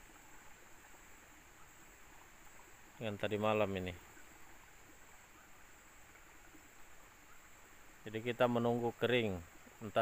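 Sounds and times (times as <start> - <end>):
steady high-pitched hiss: 0.0 - 10.0.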